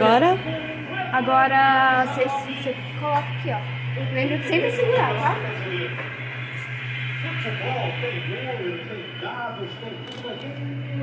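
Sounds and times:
indistinct background speech: 0:00.0 - 0:11.0
steady low hum: 0:00.0 - 0:11.0.

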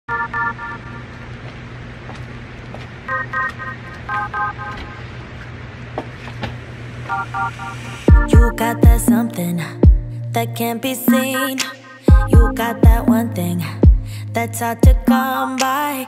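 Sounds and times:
steady low hum: 0:00.1 - 0:11.4, 0:12.1 - 0:15.1
electronic chord beeps: 0:03.1 - 0:05.1, 0:07.1 - 0:09.5.

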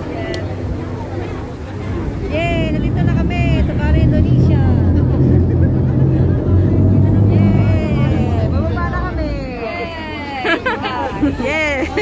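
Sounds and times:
ferry engine rumbling: 0:00.0 - 0:12.0
passengers' voices: 0:00.0 - 0:12.0.

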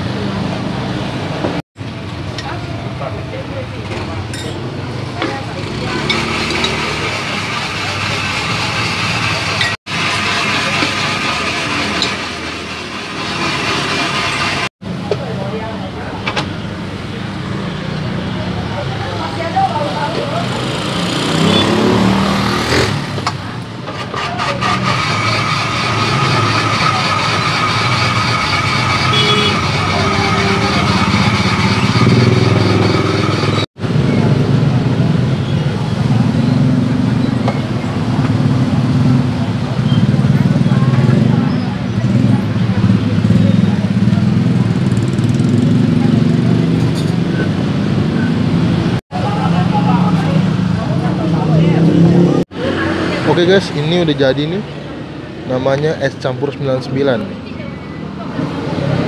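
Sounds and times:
motorbikes: 0:00.0 - 0:59.0
street traffic: 0:00.0 - 0:59.0
people chattering: 0:01.9 - 0:13.6, 0:14.8 - 0:59.0
ice-shaving machine whine: 0:06.1 - 0:14.7.

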